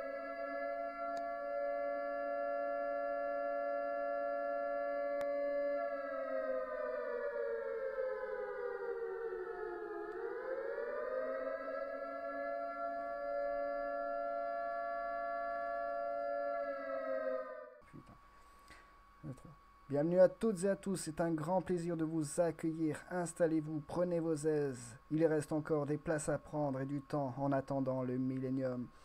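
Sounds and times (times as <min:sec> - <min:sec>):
siren-like electronic tone: 0:00.0 - 0:18.2.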